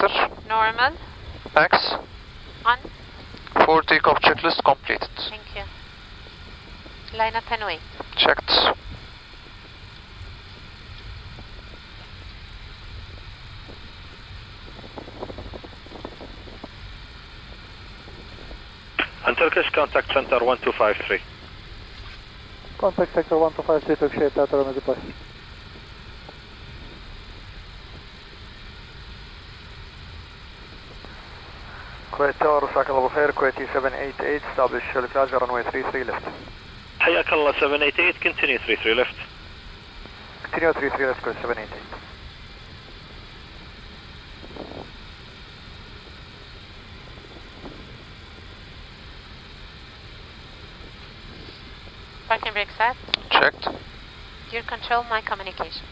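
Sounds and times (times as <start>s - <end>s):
faint even hiss: 0.0s - 21.2s, 21.9s - 55.9s
aircraft engines idling rumble: 0.0s - 55.9s.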